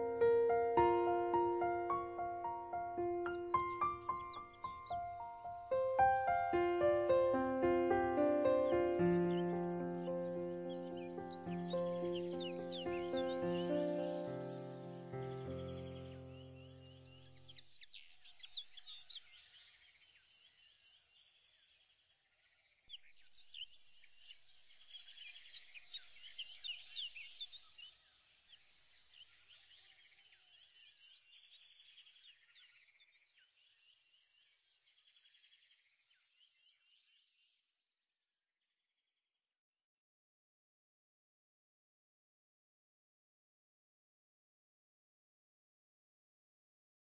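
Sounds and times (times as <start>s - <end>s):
held music chord: 0.0s - 16.2s
birds chirping: 0.0s - 19.6s.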